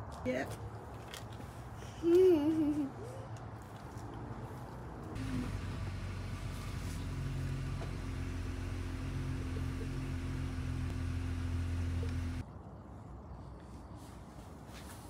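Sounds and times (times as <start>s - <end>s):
car engine idling: 5.2s - 12.4s.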